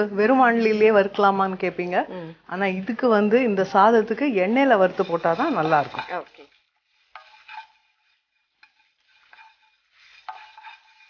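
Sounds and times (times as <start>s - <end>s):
spatula stirring spices in pan: 2.6s - 11.0s.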